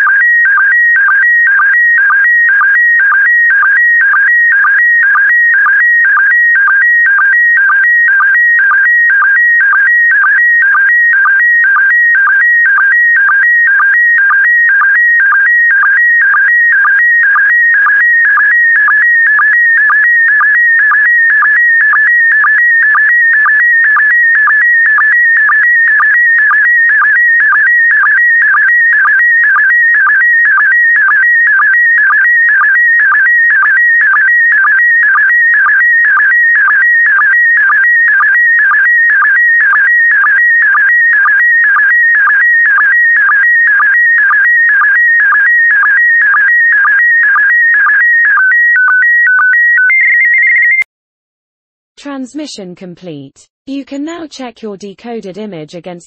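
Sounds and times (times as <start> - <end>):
warbling electronic whistle: 17.4 - 50.8.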